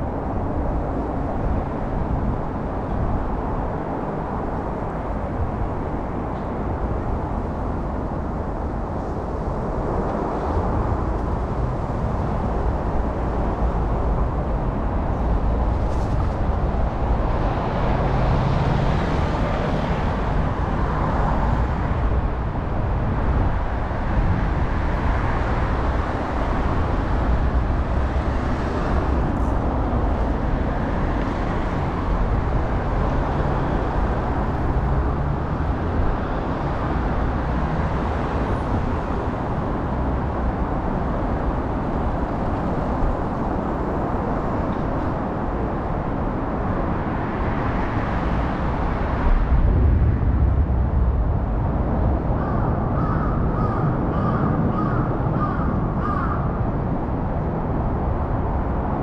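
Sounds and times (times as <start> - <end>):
city road traffic: 0.0 - 59.0
low rumble: 49.2 - 53.0
crow cawing: 52.4 - 56.4.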